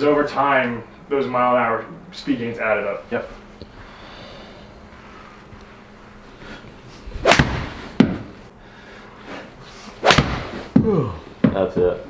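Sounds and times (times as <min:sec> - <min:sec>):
golf club swing whoosh: 0:07.0 - 0:08.0, 0:09.8 - 0:10.7
sharp knock: 0:10.1 - 0:10.6.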